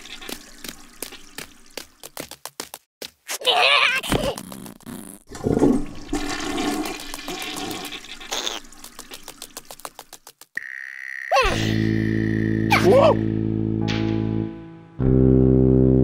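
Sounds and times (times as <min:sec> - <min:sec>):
cartoon character vocalizations: 0:03.3 - 0:04.6, 0:08.3 - 0:08.6, 0:11.3 - 0:13.2.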